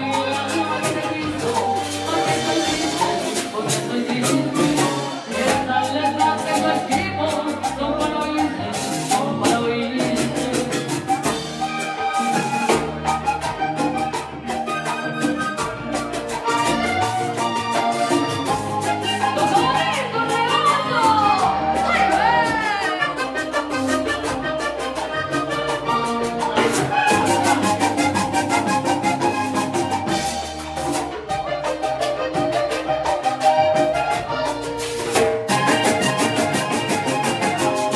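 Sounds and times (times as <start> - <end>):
button accordion: 0.0 - 37.9
drum kit: 0.0 - 37.9
hand drum percussion: 0.0 - 37.9.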